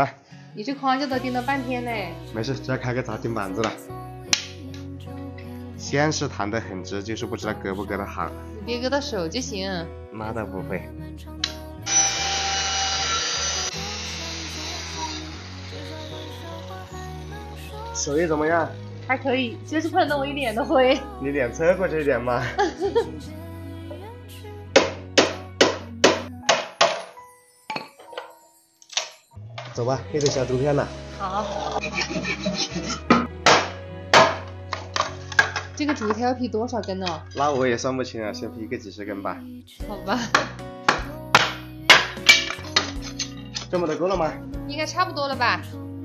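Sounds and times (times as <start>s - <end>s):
background music: 0.0s - 46.0s
circular saw whining: 11.8s - 19.0s.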